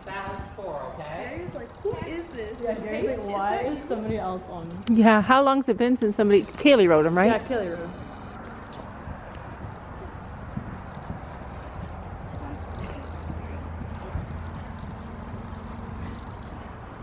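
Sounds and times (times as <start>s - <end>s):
steady low hum: 0.0s - 17.0s
muffled hoofbeats on sand: 6.4s - 17.0s.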